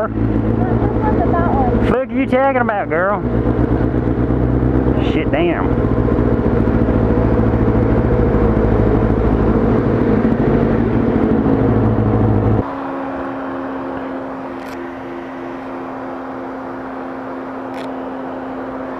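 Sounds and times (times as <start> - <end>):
motorcycle engine idling: 0.0 - 12.6
steady pulsing hum: 0.0 - 18.9.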